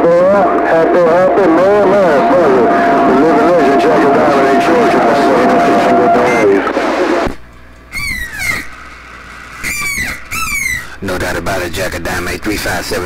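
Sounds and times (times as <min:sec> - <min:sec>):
voices over radio: 0:00.0 - 0:07.4
squealing radio tones: 0:00.0 - 0:11.2.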